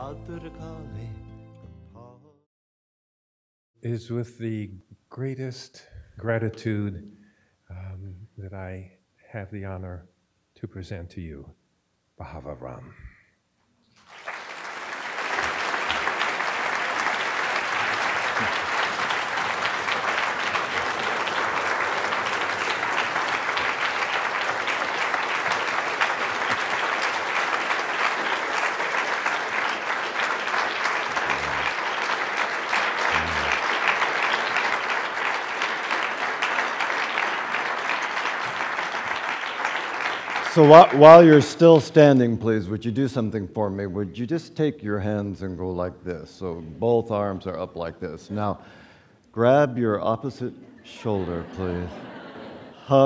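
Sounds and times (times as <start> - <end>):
audience applause: 14.0 - 42.2, 51.1 - 53.0.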